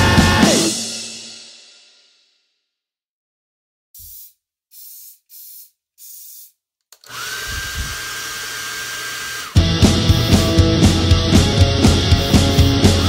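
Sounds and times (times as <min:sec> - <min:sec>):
distorted guitar with feedback whistle: 0:00.0 - 0:00.8, 0:09.6 - 0:13.0
punk band playing: 0:00.0 - 0:01.2, 0:09.6 - 0:13.0
hi-hat count-in strokes: 0:09.6 - 0:13.0.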